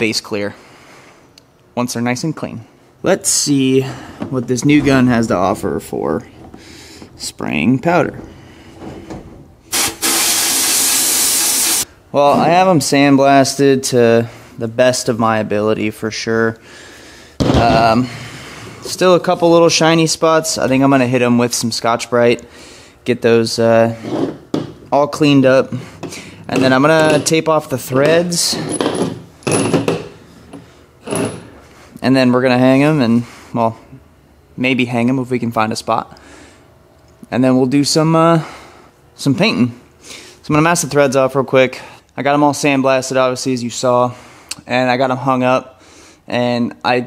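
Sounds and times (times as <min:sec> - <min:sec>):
compressed air blasting hiss: 0:09.6 - 0:11.9.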